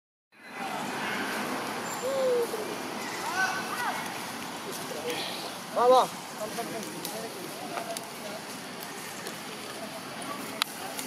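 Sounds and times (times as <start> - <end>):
steady background noise: 0.4 - 11.0
monkeys giving high coo calls: 1.8 - 3.2.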